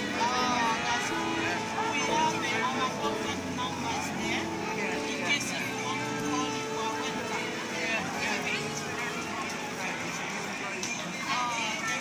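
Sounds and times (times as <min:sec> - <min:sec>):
background music with sustained tones: 0:00.0 - 0:11.4
voices talking: 0:00.0 - 0:12.0.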